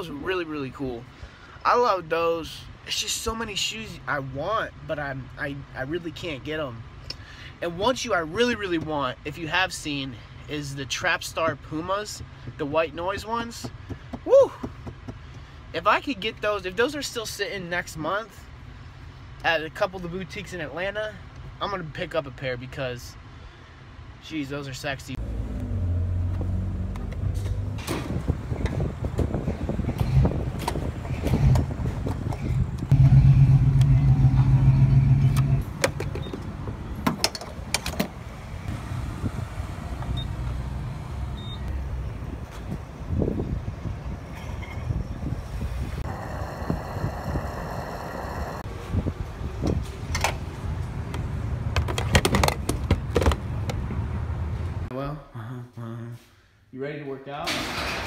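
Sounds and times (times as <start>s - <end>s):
low vehicle hum: 24.8s - 54.9s
gas pump nozzle handling: 51.1s - 53.9s.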